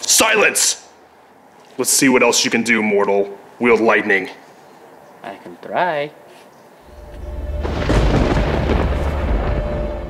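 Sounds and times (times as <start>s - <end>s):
deep thunder rumble: 6.9s - 10.0s
crackling thunderclap: 7.0s - 10.0s.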